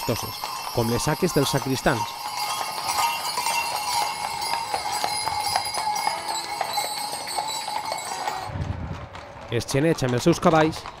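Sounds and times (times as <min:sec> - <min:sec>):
harness bells jingling: 0:00.0 - 0:08.5
hooves clopping on pavement: 0:00.0 - 0:11.0.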